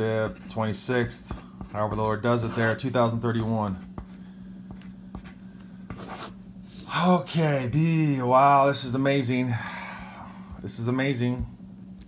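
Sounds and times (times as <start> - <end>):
pencil scratching on paper: 0.2 - 6.4.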